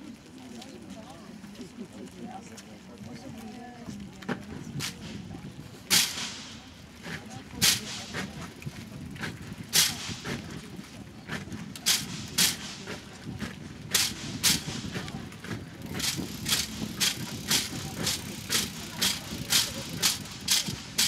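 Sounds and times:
low crowd murmur: 0.0 - 21.0.

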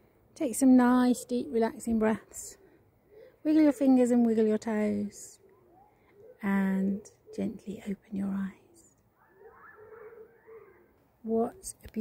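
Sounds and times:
faint wavering animal call: 2.6 - 3.9, 5.3 - 7.5, 9.1 - 11.0.

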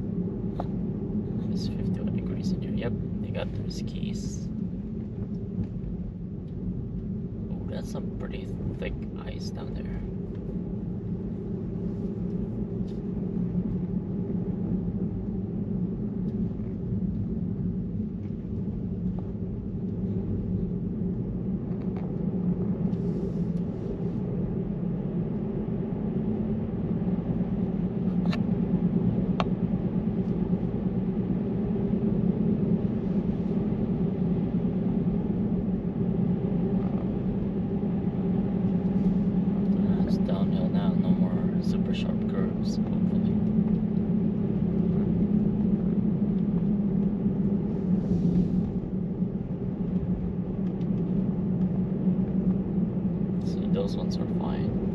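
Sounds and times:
road and tyre rumble: 0.0 - 54.9.

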